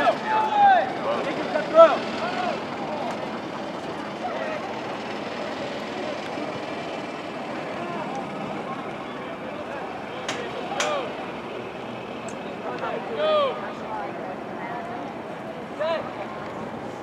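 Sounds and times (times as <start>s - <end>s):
players shouting: 0.0s - 14.2s
steady background noise: 0.0s - 17.0s.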